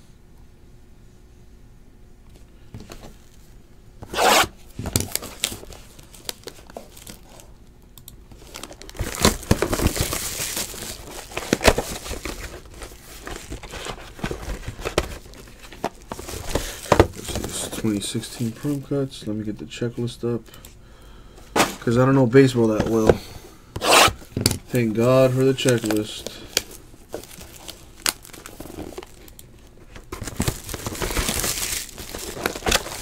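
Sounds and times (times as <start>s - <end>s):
plastic shrink wrap ripping: 4.1s - 7.5s, 8.4s - 18.9s, 25.3s - 29.4s, 30.2s - 33.0s
plastic wrap crinkling: 4.1s - 7.6s, 8.3s - 19.0s, 24.2s - 33.0s.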